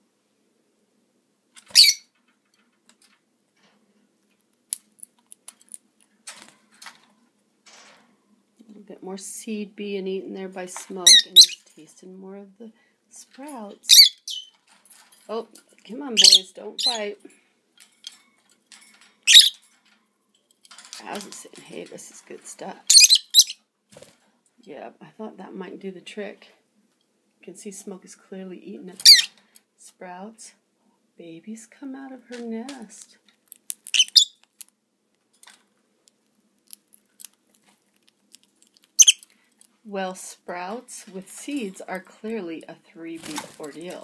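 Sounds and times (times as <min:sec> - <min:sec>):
bird squeaking: 0:01.7 - 0:02.1, 0:11.1 - 0:11.6, 0:13.9 - 0:14.6, 0:16.2 - 0:17.0, 0:19.3 - 0:19.6, 0:22.9 - 0:23.6, 0:29.0 - 0:29.3, 0:33.9 - 0:34.4, 0:39.0 - 0:39.2
lovebird squawk: 0:01.7 - 0:02.1, 0:13.9 - 0:14.5, 0:22.9 - 0:23.6, 0:34.0 - 0:34.4, 0:39.0 - 0:39.2.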